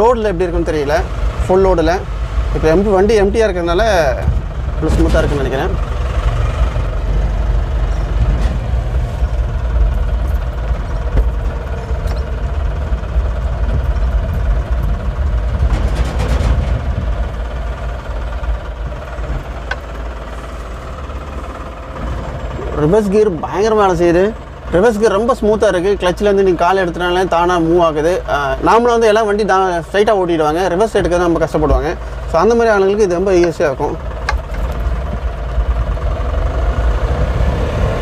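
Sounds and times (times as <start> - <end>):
diesel engine low rumble: 0.0 - 38.0
road noise: 0.0 - 38.0.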